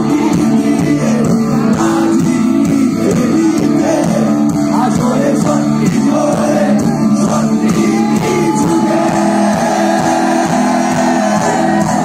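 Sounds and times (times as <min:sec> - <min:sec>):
electric guitars: 0:00.0 - 0:12.0
live rock band playing: 0:00.0 - 0:12.0.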